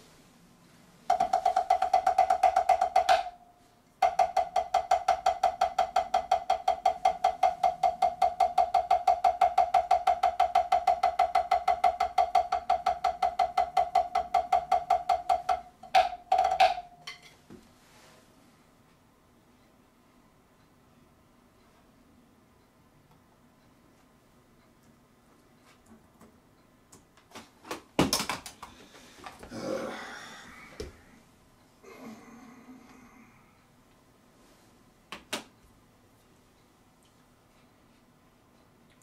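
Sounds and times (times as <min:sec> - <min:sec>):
drumsticks on practice pad: 0:01.1 - 0:17.6.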